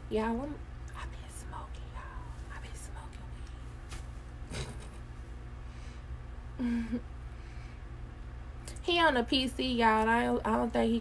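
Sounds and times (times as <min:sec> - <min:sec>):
steady low hum: 0:00.0 - 0:11.0
whispered speech: 0:00.9 - 0:03.6.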